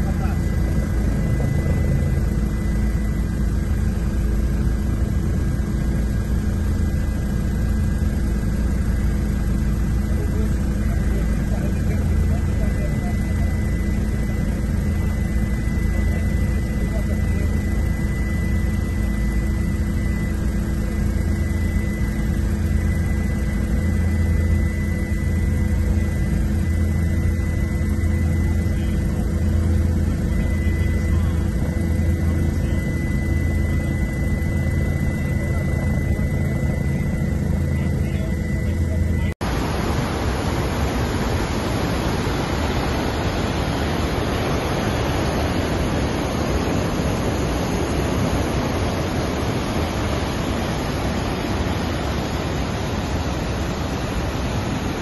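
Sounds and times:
aircraft engine drone in cabin: 0.0 - 55.0.

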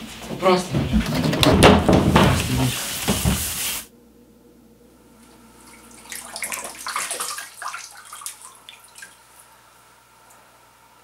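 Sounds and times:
water splashing: 5.6 - 9.4
water dripping: 5.6 - 9.5.

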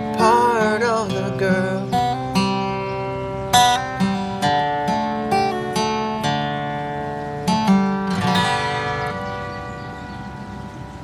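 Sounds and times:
acoustic guitar notes ringing: 0.0 - 11.0.

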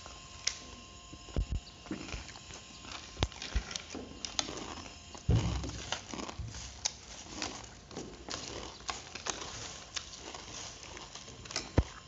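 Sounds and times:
chewing: 0.0 - 12.0
soft thump: 5.3 - 5.8.

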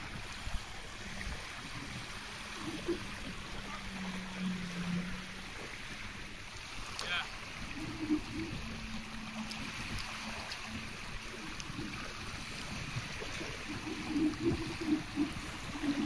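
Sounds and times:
distant jet ski engine droning: 0.0 - 16.0
water noise: 0.0 - 16.0
wind: 0.0 - 16.0.

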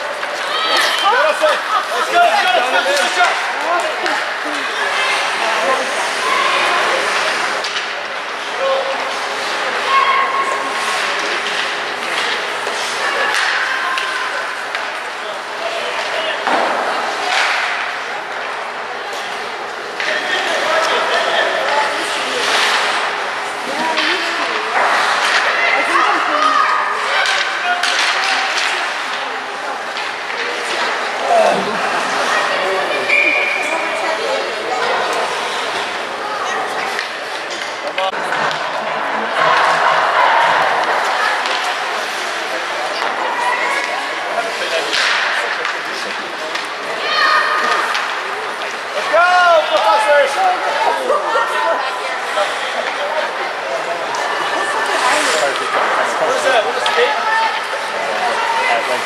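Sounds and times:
spectators' voices: 0.0 - 59.0
puck and sticks hitting boards: 6.5 - 15.2, 15.8 - 31.2, 36.8 - 50.6, 54.0 - 59.0.

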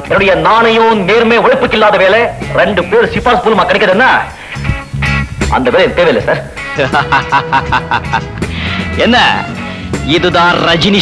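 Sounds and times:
film music with held note: 1.5 - 11.0
man laughing in short bursts: 6.8 - 8.5.

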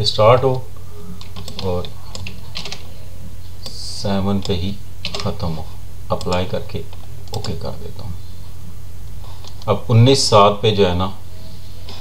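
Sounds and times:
steady low hum: 0.0 - 12.0
computer keyboard keystrokes: 1.2 - 2.8, 4.4 - 5.3, 7.3 - 7.6.

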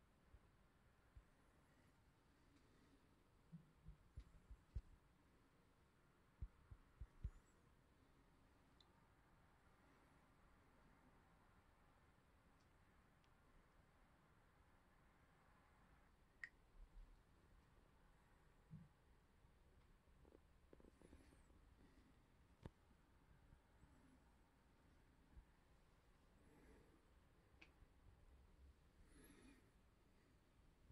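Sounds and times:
faint low rumbles: 0.2 - 8.9.

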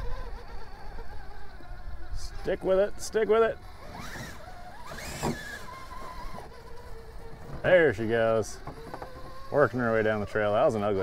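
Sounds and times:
electric motor whining: 0.0 - 11.0.

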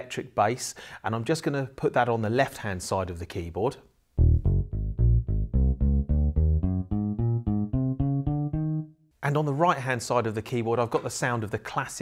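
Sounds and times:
electric bass notes on keyboard: 4.2 - 9.0.

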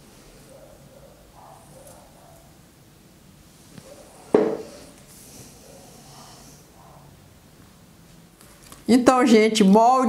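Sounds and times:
hand thumping on tabletop: 4.4 - 4.7.

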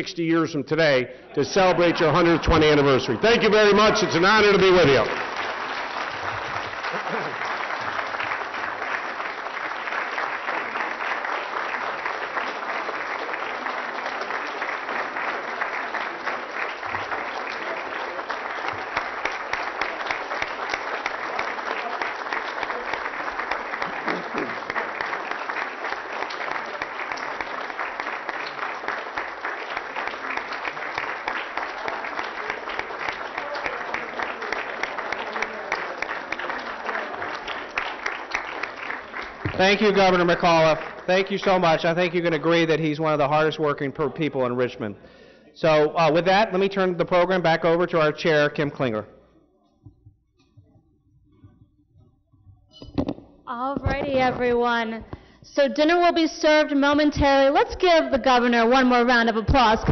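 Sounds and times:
audience applauding: 1.5 - 44.2.

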